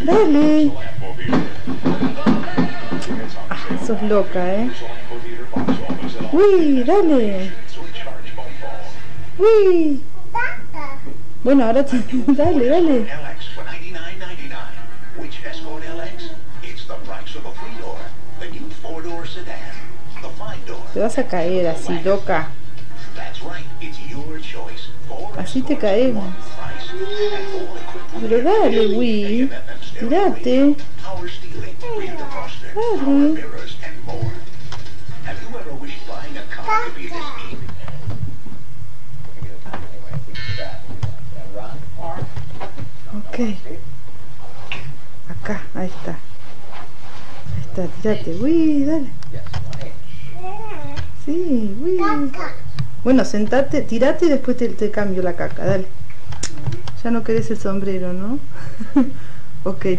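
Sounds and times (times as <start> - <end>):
television music: 0.0 - 59.9
television voices: 0.0 - 59.9
toddler babbling: 10.3 - 11.1, 26.9 - 27.7, 31.8 - 32.5, 36.7 - 37.5, 50.4 - 51.1, 52.0 - 52.6.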